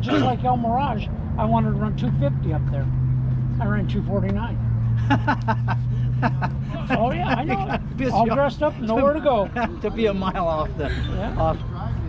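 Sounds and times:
man laughing heartily: 4.9s - 11.4s.

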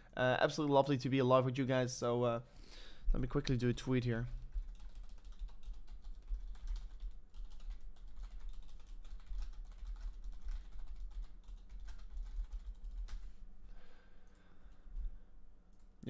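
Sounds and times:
keyboard typing: 4.3s - 13.4s.

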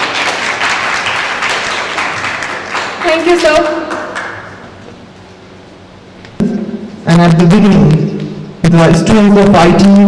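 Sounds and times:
low sound through speakers: 6.2s - 10.0s.

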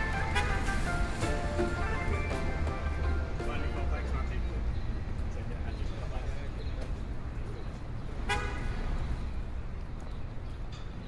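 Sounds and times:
vehicle horn toot: 0.0s - 1.0s, 8.3s - 8.7s
street traffic rumble: 0.0s - 11.0s.

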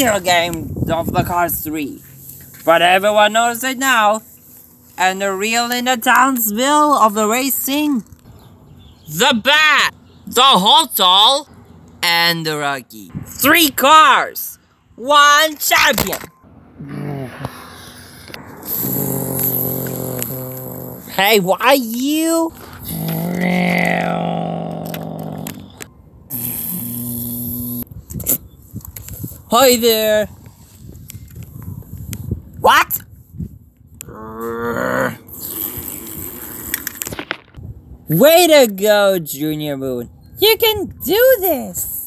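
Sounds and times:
person imitating car engine: 16.8s - 17.8s, 18.6s - 21.2s, 22.8s - 27.9s, 34.0s - 36.4s
breathy rushing noise: 16.8s - 21.2s.

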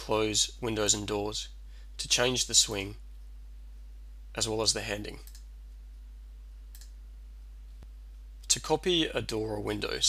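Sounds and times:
low electrical hum: 0.0s - 10.0s
mouse click: 6.7s - 7.0s.

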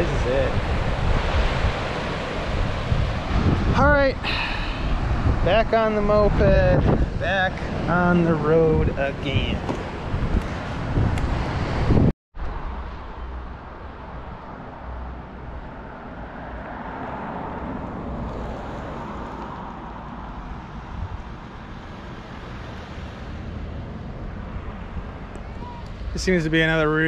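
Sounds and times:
wind rumbling on microphone: 0.0s - 27.0s.

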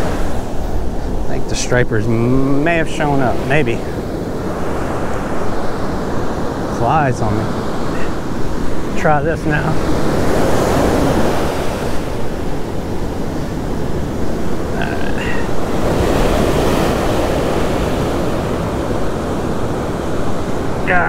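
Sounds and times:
ocean surf breaking: 0.0s - 21.0s.

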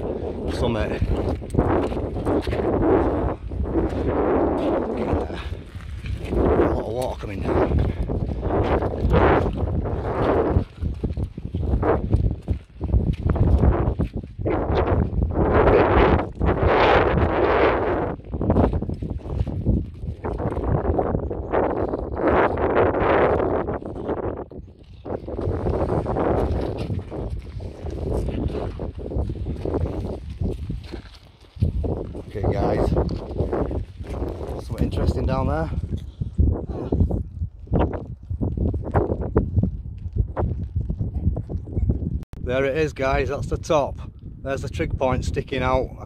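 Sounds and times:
footsteps on stony path: 0.0s - 42.2s
wind buffeting microphone: 0.0s - 46.0s.

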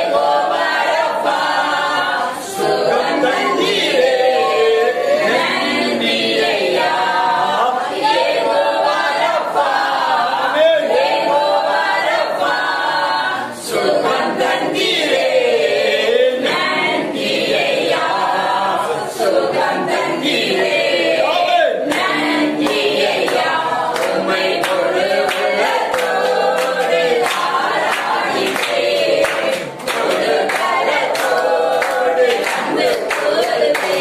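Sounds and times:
group singing: 0.0s - 34.0s
hand claps: 21.8s - 34.0s.

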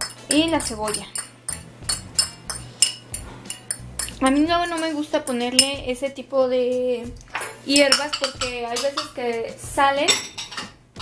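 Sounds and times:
metal spoon clinking on dish: 0.0s - 5.8s, 7.3s - 9.2s, 10.1s - 10.8s.

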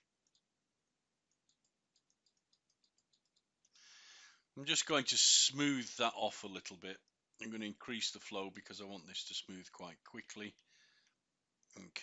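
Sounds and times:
soft breath: 3.7s - 4.5s, 10.6s - 11.2s.

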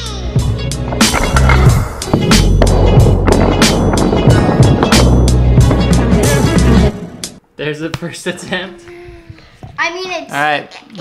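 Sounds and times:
music with drum beat and heavy bass: 0.3s - 7.3s.

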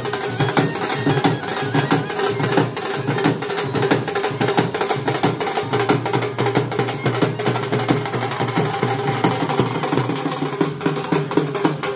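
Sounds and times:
band music: 0.0s - 10.2s
drums beating fast rhythm: 0.0s - 11.9s.

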